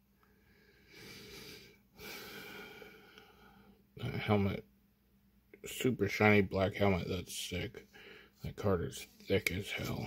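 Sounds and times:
man breathing: 0.2 - 3.9, 7.9 - 8.4.

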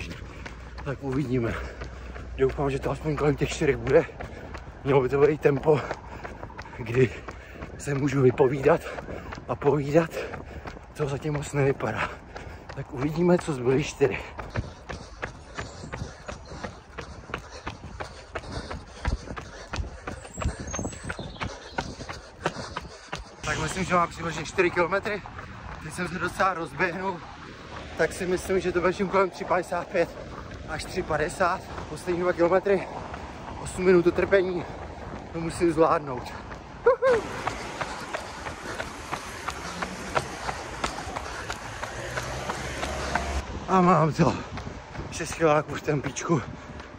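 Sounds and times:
running footsteps on asphalt: 0.0 - 46.9.

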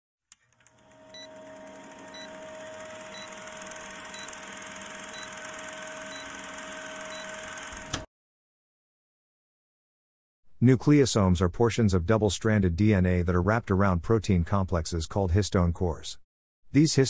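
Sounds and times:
film projector whirring and clattering: 0.4 - 8.1
short high beeps: 5.1 - 5.4.

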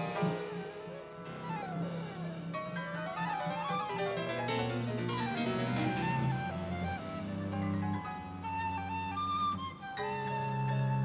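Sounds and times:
jazz quartet playing: 0.0 - 11.0
piano chords: 0.0 - 11.0.

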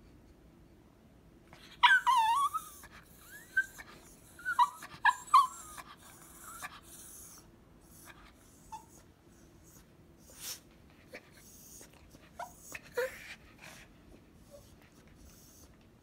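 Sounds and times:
small dog whimpering: 1.6 - 13.8.

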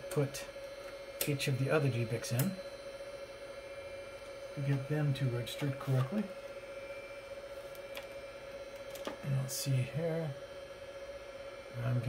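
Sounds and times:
constant mid-pitched tone: 0.0 - 12.0
cooling fans humming: 0.0 - 12.0.

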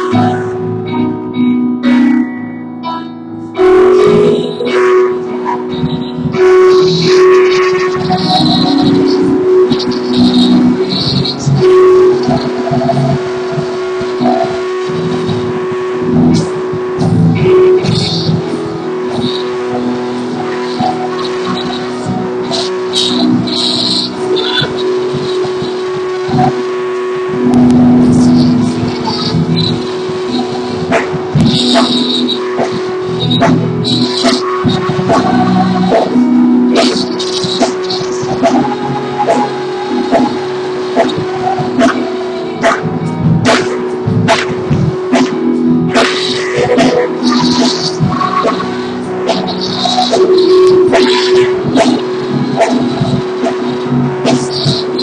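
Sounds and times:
keyboard chords: 0.0 - 55.0
people calling out praise: 22.9 - 25.1.

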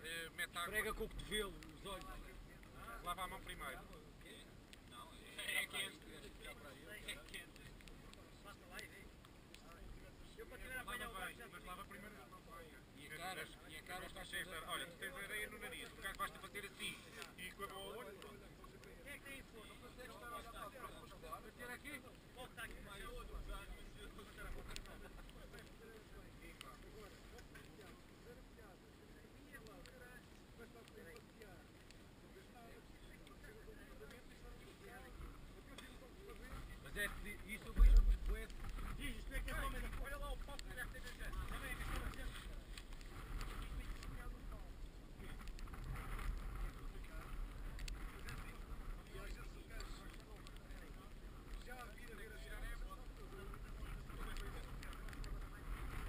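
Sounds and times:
wind buffeting microphone: 36.4 - 56.0.

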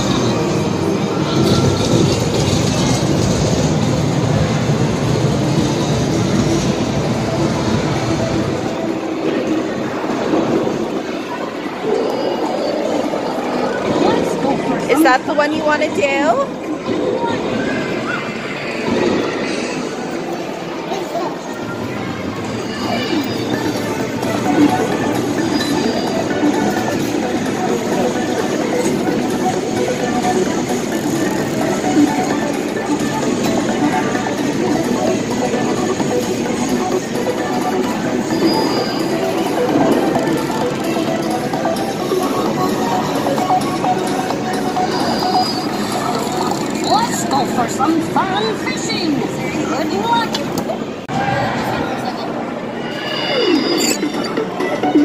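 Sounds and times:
many people talking: 0.0 - 55.0.

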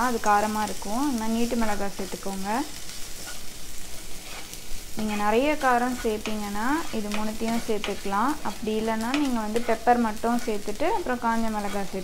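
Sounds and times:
onions sizzling in oil: 0.0 - 12.0
spatula stirring: 2.9 - 12.0.

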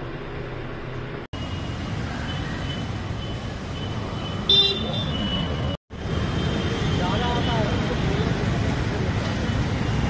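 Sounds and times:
street traffic noise: 0.0 - 10.0
vehicle horn honk: 4.5 - 5.7.

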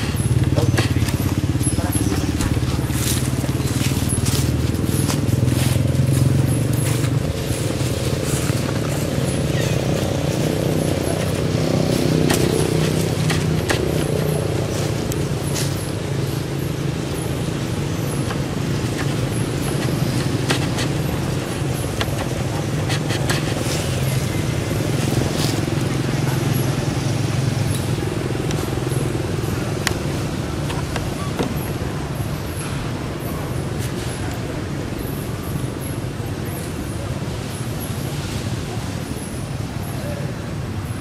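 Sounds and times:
low engine hum: 0.0 - 40.8.

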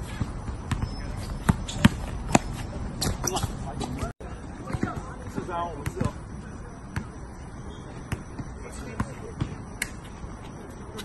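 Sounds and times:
basketball bouncing on hard court: 0.1 - 3.5.

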